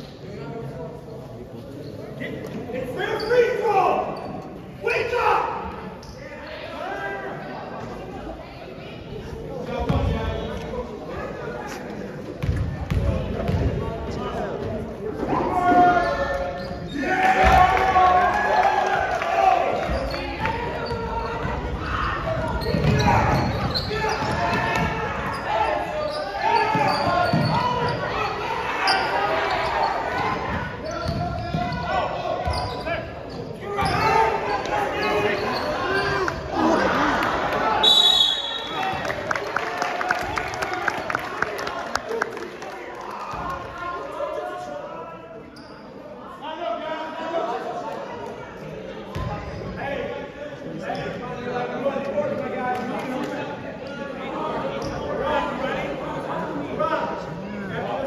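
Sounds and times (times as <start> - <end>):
voices in a large hall: 0.0 - 58.0
basketball bouncing on gym floor: 12.4 - 13.8, 30.5 - 31.8
short high whistle: 37.8 - 38.8.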